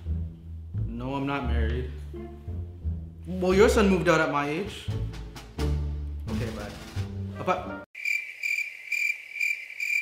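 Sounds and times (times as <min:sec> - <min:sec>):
crickets chirping: 0:08.0 - 0:10.0.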